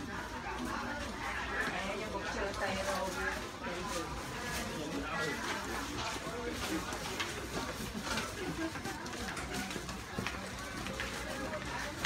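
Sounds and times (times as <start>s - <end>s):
indistinct background voices: 0.0s - 12.0s
market hubbub: 0.0s - 12.0s.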